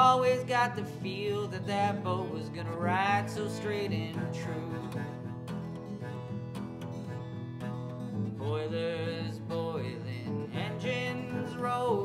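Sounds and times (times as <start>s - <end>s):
acoustic guitar country ballad: 0.0s - 12.0s.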